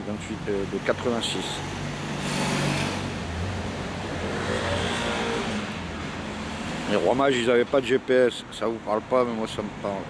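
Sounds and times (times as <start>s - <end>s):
road traffic hiss: 0.0s - 10.0s
vehicle engine passing: 2.0s - 7.1s.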